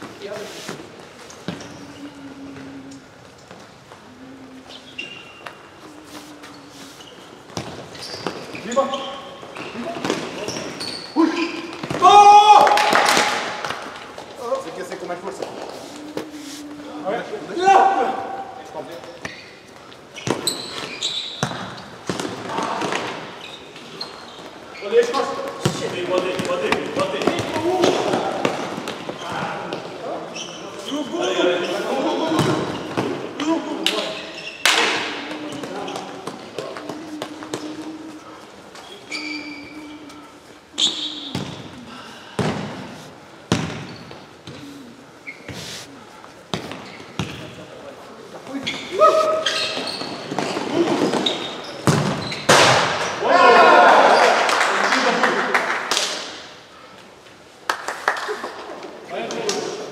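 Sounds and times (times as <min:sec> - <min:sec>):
ball bouncing on court: 0:20.2 - 0:23.2, 0:25.4 - 0:29.9, 0:32.3 - 0:33.2, 0:41.3 - 0:41.7, 0:43.5 - 0:44.6, 0:46.5 - 0:47.5, 0:49.9 - 0:53.1
players shouting: 0:53.2 - 0:54.5.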